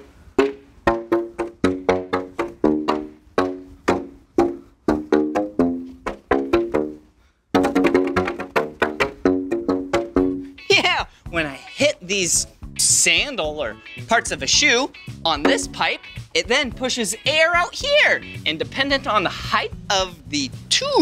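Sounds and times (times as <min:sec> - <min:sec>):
plastic pipes slapped with sandals: 0:00.0 - 0:10.4.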